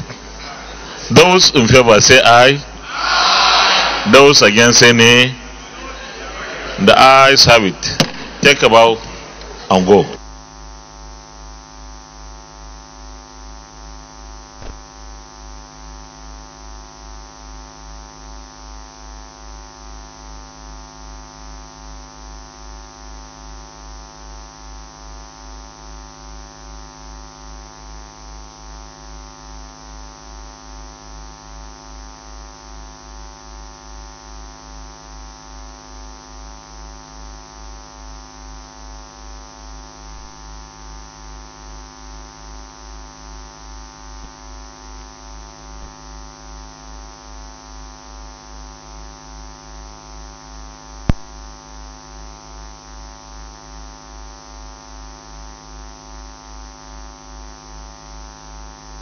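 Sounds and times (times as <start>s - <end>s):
electrical hum with low throb: 0.0s - 59.0s.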